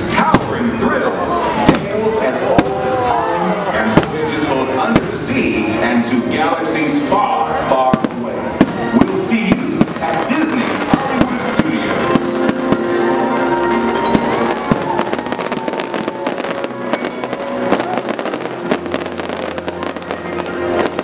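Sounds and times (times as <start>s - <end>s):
fireworks bangs and crackles: 0.0s - 21.0s
show music with sustained tones: 0.0s - 21.0s.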